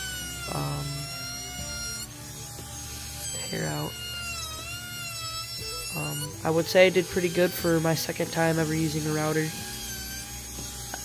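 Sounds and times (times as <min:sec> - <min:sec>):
wood router motor whine: 0:00.0 - 0:11.0.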